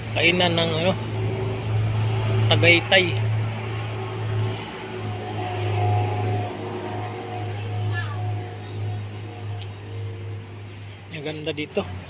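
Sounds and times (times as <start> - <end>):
faint high steady tones: 0.0 - 12.0
steady low hum: 0.0 - 12.0.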